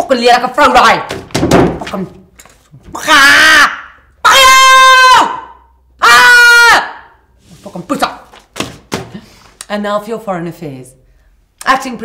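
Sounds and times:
woman screaming: 2.9 - 7.1
papers slapping onto desk: 8.2 - 9.5.

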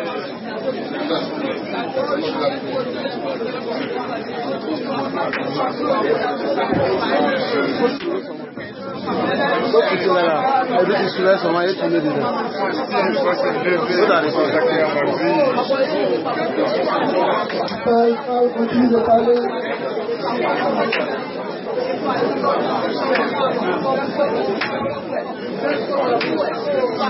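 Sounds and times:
many voices praying aloud: 0.0 - 27.0.

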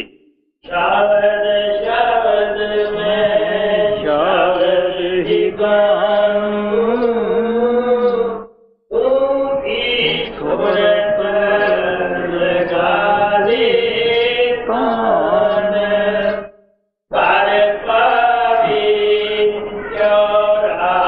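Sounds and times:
solo voice chanting a hymn: 0.0 - 16.5.

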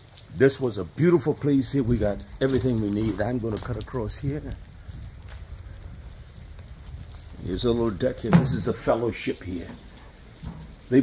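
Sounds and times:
steady rain falling: 0.0 - 11.0.

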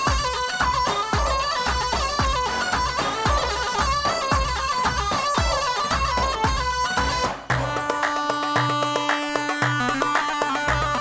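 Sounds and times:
bass drum beating rhythm: 0.0 - 11.0
ornamented melody line: 0.0 - 11.0.

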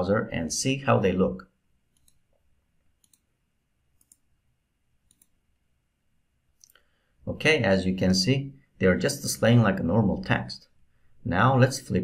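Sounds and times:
faint computer mouse clicks: 1.9 - 2.4, 3.0 - 3.3, 4.0 - 4.3, 5.1 - 5.4.

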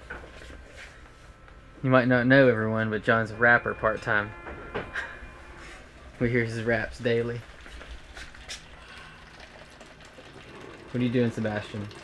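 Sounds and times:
water running into container: 5.8 - 12.0.

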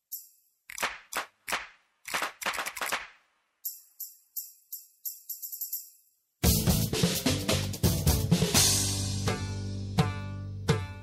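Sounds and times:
clap-like percussion hits: 0.7 - 3.2.

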